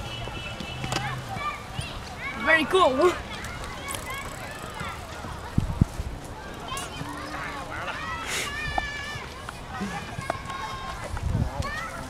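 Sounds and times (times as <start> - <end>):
distant children calling out: 0.0 - 12.0
wind rumble on microphone: 5.4 - 6.3, 10.8 - 12.0.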